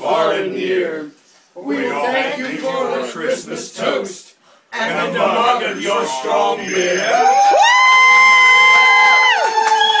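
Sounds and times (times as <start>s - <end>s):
voices cheering: 6.9s - 10.0s.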